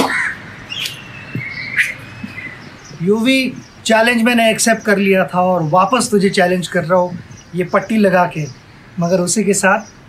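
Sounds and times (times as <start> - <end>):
bird call: 0.0 - 3.8
thin whistled bird notes: 0.7 - 2.9
sharp clicks: 0.8 - 1.0.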